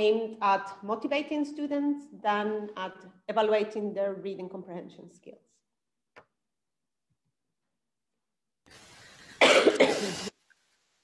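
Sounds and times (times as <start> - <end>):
woman coughing: 9.4 - 10.3.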